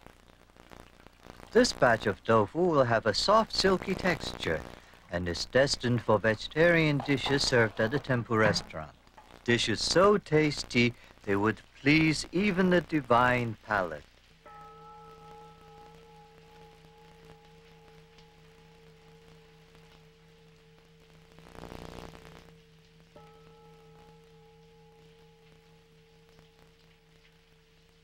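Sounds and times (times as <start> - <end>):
low steady hum: 0.0 - 28.0
struck bell ringing: 14.5 - 20.8.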